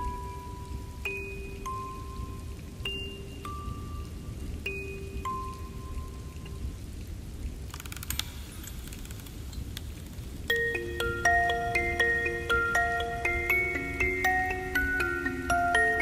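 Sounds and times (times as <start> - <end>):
music-box notes: 0.0 - 6.7, 10.5 - 16.0
steady rain: 0.0 - 16.0.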